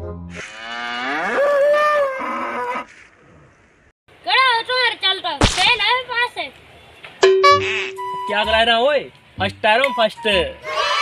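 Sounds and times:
cow mooing: 0.4s - 2.9s.

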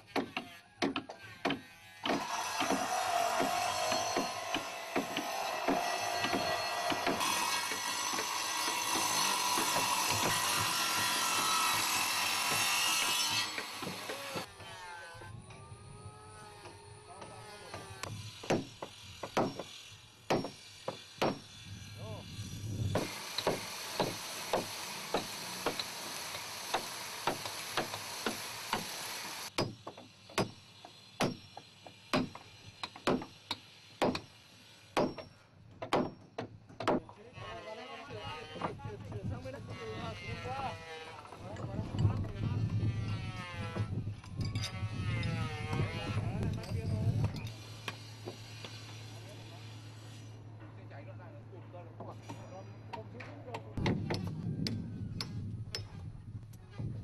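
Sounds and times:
power tool cutting wood: 1.8s - 18.4s, 22.9s - 29.5s, 42.4s - 44.0s, 44.6s - 46.5s
chopping blows on timber: 18.4s - 19.7s.

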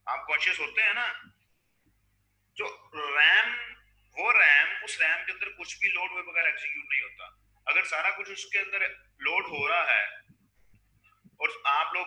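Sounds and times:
man speaking: 0.0s - 1.3s, 2.6s - 10.2s, 11.4s - 12.0s.

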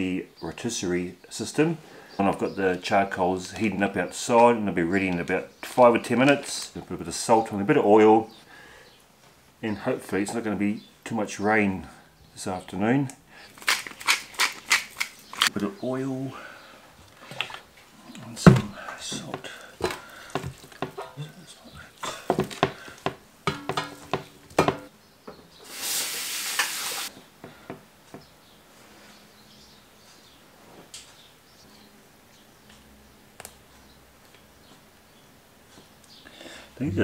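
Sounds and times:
clicks and knocks in metal tray: 23.5s - 24.9s
short hiss: 25.6s - 27.1s.

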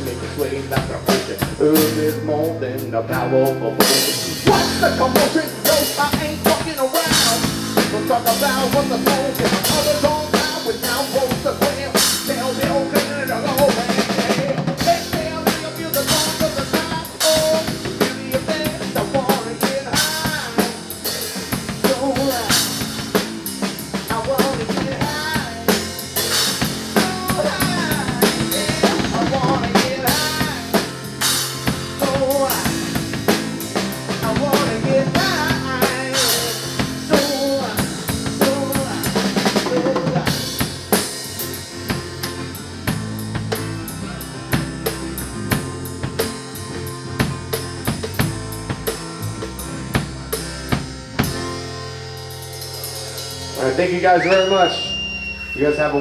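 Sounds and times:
bass guitar: 0.0s - 56.0s
drum kit beat: 0.0s - 56.0s
melodic lead line: 0.0s - 56.0s.

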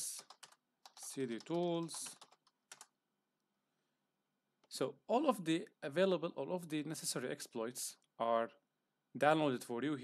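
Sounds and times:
computer keyboard keystrokes: 0.2s - 2.9s.

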